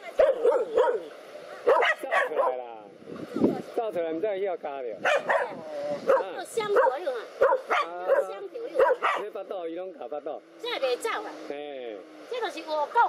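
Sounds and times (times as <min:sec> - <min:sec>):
dogs barking: 0:00.0 - 0:02.8, 0:05.0 - 0:09.4.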